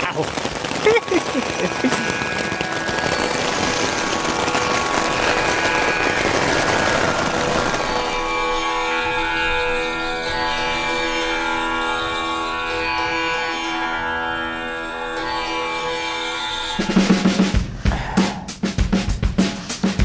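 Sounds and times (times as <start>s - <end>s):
hail and rain on tent fabric: 0.0s - 17.7s
music with sustained notes: 1.3s - 17.6s.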